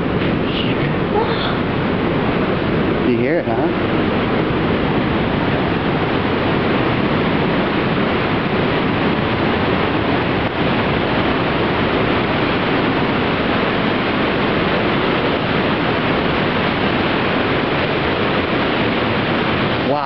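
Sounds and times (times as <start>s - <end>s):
waterfall rushing: 0.0s - 20.0s.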